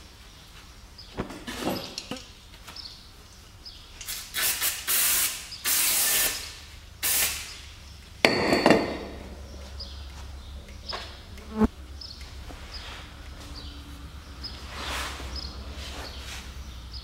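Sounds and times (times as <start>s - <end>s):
aerosol spray can hissing: 4.1s - 7.6s.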